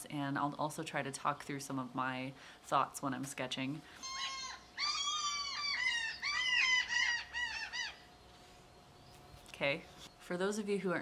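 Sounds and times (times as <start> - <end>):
gull squawking: 4.0 - 8.1.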